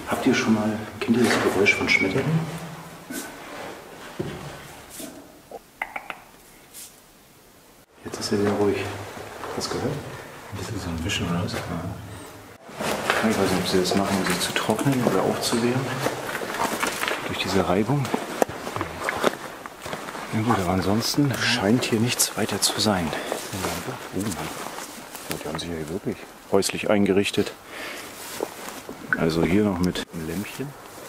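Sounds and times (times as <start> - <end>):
footsteps on forest floor: 12.9 - 26.0.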